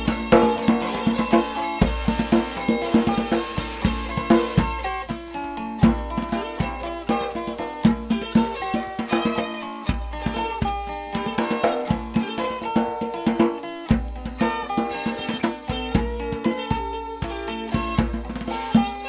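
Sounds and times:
blues guitars playing: 0.0s - 19.0s
djembe and hand percussion: 0.0s - 19.0s.

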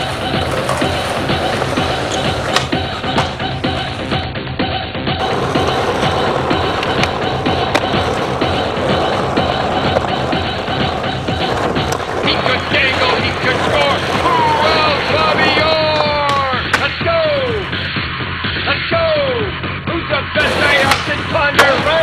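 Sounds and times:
skateboard clacks: 0.0s - 4.3s, 5.2s - 17.6s, 20.4s - 22.0s
falling pitched slides: 0.0s - 17.9s
skateboard wheels rolling on asphalt: 0.0s - 19.8s, 20.4s - 22.0s
music track: 0.0s - 22.0s.

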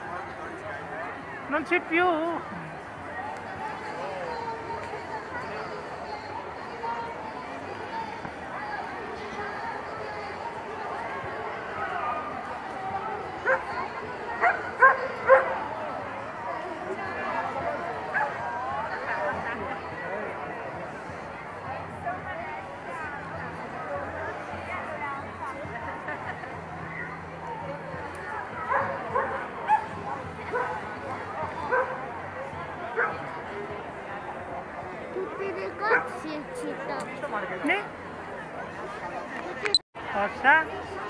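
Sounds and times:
crowd chatter: 0.0s - 41.0s.

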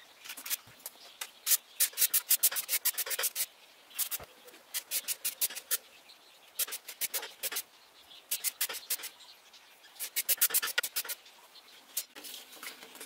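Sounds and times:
plane blade rasping on sandpaper: 1.8s - 5.8s, 6.6s - 7.6s, 8.3s - 9.1s, 10.0s - 11.2s.

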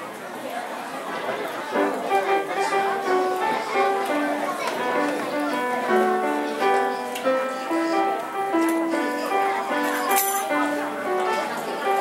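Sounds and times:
upright piano playing: 1.8s - 12.0s.

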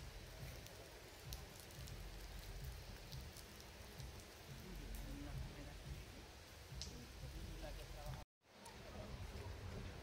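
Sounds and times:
light hiss: 0.0s - 10.0s.

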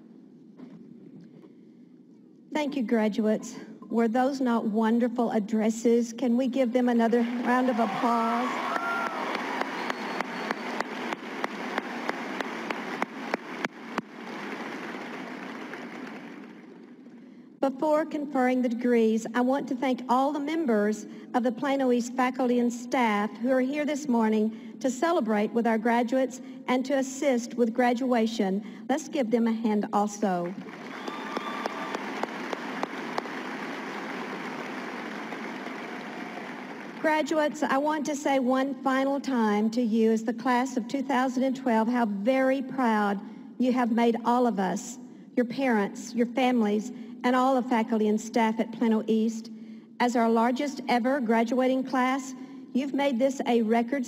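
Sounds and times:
audience applauding: 7.3s - 16.9s, 30.6s - 37.1s
close hand claps: 8.7s - 16.7s, 30.5s - 37.0s.

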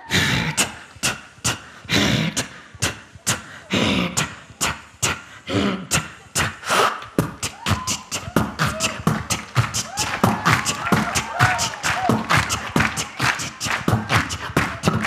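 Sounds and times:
beatboxing snare-like hits: 0.0s - 15.0s.

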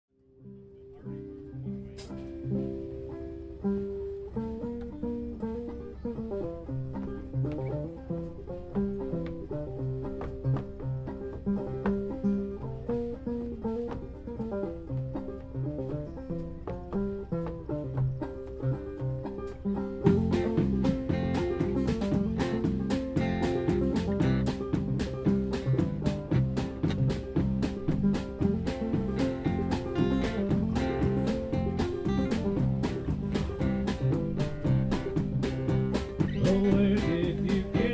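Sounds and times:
acoustic guitars: 0.3s - 37.9s
electric bass: 0.3s - 37.9s
drums and cymbals: 19.3s - 37.9s.

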